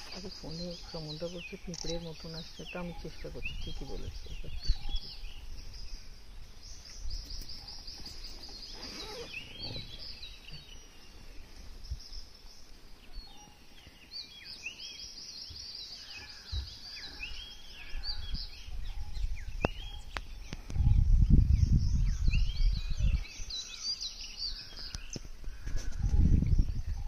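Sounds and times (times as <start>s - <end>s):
birds chirping and calling: 0.0s - 27.0s.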